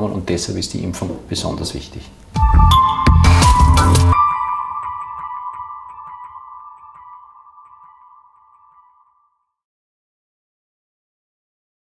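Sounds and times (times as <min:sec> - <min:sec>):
jingle with ringing tone: 0:02.5 - 0:09.4.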